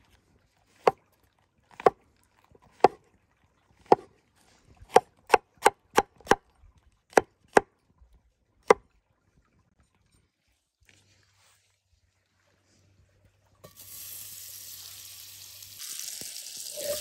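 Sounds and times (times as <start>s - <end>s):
knife chopping on wooden board: 2.8s - 3.0s, 3.8s - 4.1s, 4.9s - 6.4s.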